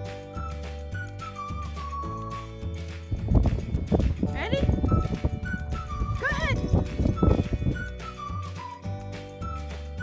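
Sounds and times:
background music with whistled tune: 0.0s - 10.0s.

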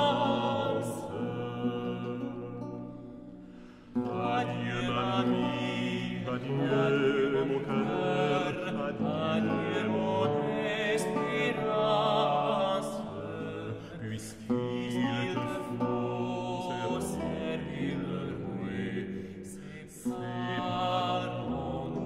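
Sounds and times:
early music song with period instruments: 0.0s - 22.0s.

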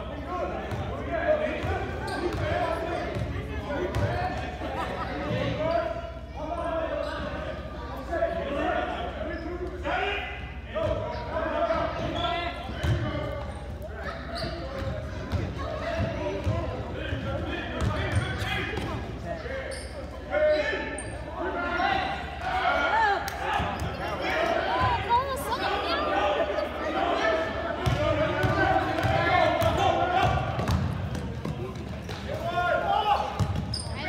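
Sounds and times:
basketball bouncing on gym floor: 27.8s - 32.3s, 33.4s - 33.8s.

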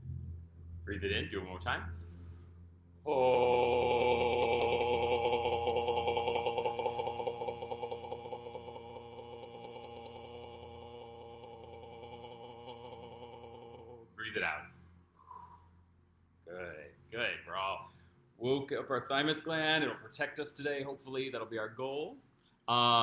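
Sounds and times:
man singing a long vowel: 3.0s - 14.2s.

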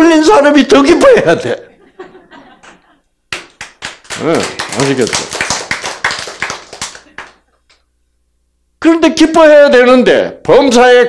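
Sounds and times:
audience clapping: 2.6s - 7.8s.

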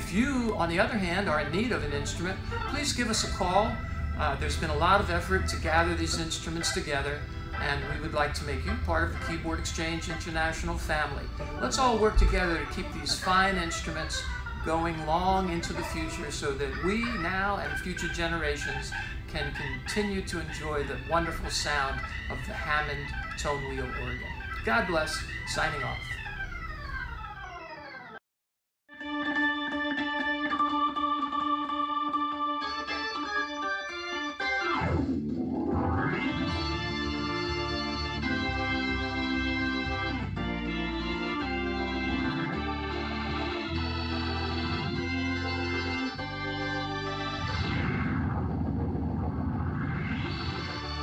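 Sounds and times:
organ chord sliding downward: 0.0s - 28.2s, 29.0s - 51.0s
dense low rumble: 47.8s - 50.1s.

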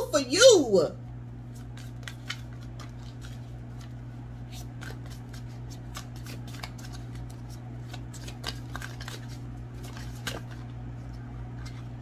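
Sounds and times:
steady low hum: 0.0s - 12.0s
cards being shuffled: 1.5s - 12.0s.

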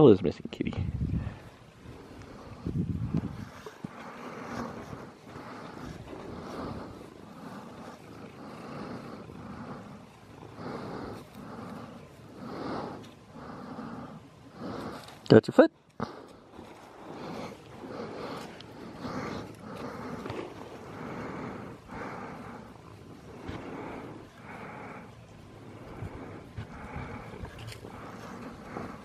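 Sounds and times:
cat purring: 1.2s - 15.1s, 16.0s - 29.0s.

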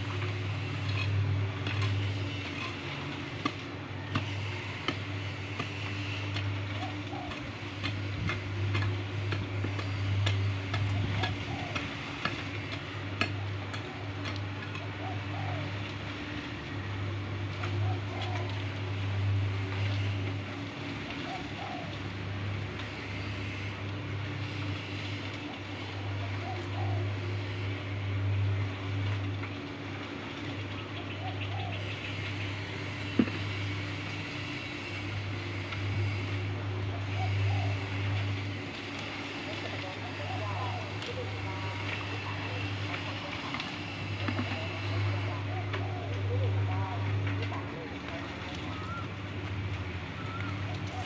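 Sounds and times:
motor humming: 0.0s - 51.0s
distant voices talking: 16.7s - 51.0s.

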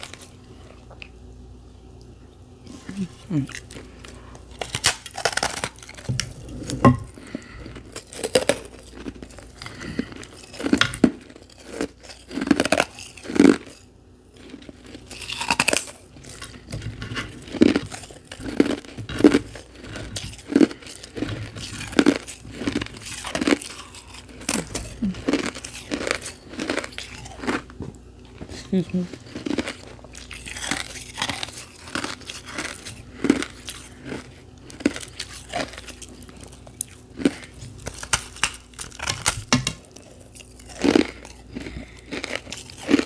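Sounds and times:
ice crunching while chewed: 0.0s - 1.2s, 2.9s - 43.0s.

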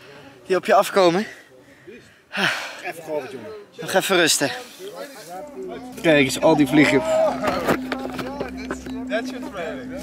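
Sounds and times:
steady low hum: 5.3s - 10.0s
indistinct man's voice: 5.4s - 10.0s.

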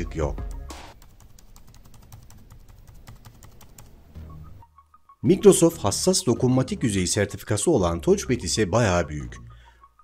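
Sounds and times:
laptop keyboard typing: 1.0s - 4.0s.

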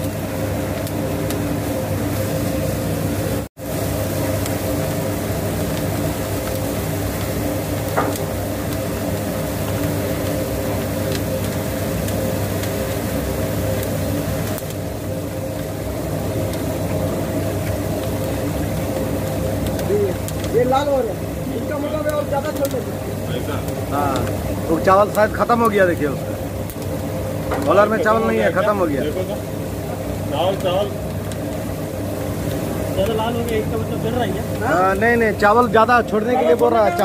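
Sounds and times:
puffed rice machine humming: 0.0s - 37.0s.

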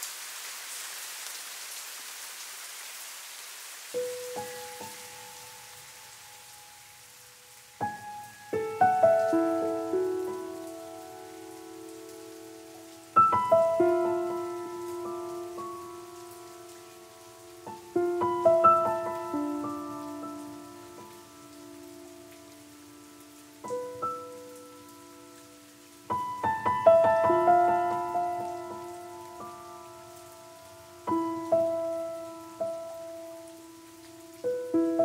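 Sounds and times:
rain falling on water: 0.0s - 35.0s
piano notes ringing: 4.0s - 6.9s, 7.8s - 35.0s.

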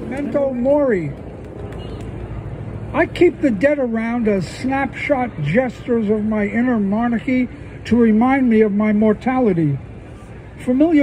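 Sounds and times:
man's voice: 0.0s - 1.2s, 2.9s - 9.8s, 10.6s - 11.0s.

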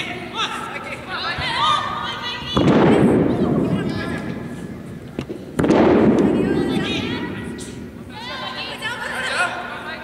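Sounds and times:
loud slam on floor echoing: 2.5s - 7.9s.

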